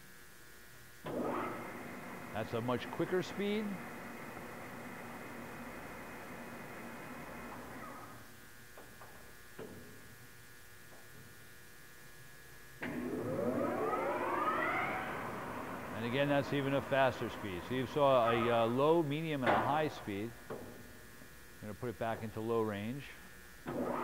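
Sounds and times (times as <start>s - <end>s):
lathe headstock whining: 12.8s - 19.1s.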